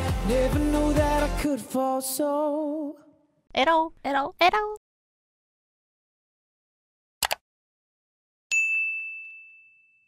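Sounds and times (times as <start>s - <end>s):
bright bell ding: 8.5s - 10.0s.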